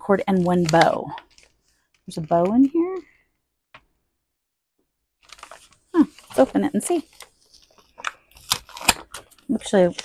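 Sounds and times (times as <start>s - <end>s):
plastic packaging handled: 0.0s - 3.1s, 5.2s - 10.0s
sharp crackles and clicks: 0.1s - 3.0s
sticker seal peeling: 7.1s - 9.4s.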